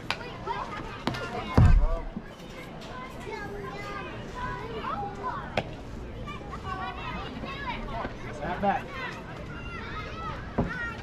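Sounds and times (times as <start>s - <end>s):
girls calling and chattering: 0.0s - 11.0s.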